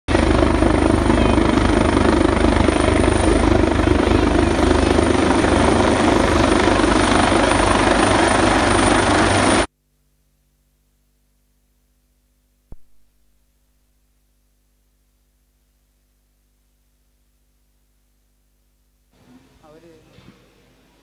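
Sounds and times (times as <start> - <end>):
helicopter rotor and engine: 0.1 - 9.7.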